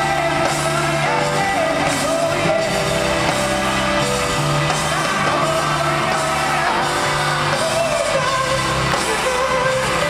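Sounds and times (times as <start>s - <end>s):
live pop-rock band: 0.0s - 10.0s
man singing lead vocal: 0.0s - 10.0s.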